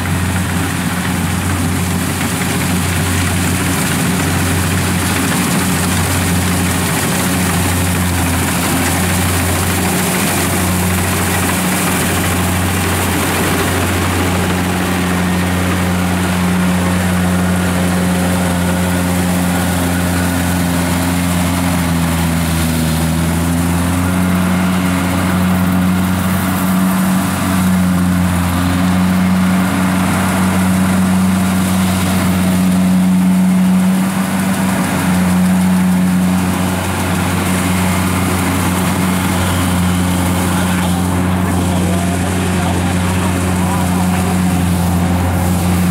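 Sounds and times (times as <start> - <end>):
combine harvester diesel engine: 0.0 - 45.9.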